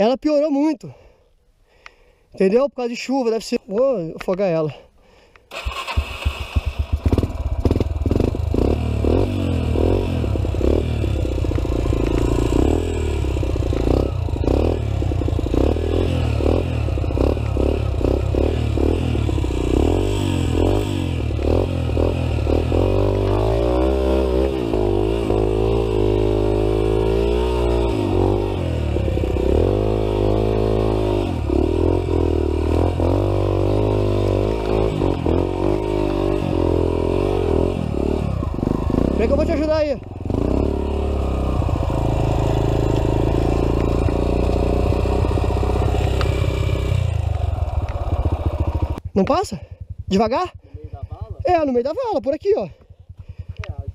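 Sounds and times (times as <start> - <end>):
dirt bike engine revving: 5.5 - 52.3.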